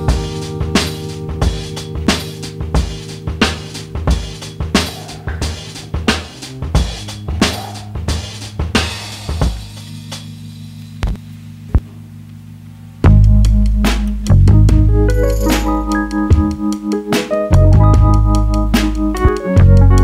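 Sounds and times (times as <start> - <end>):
drum kit beat: 0.0 - 11.8, 13.0 - 20.0
held low notes: 0.0 - 20.0.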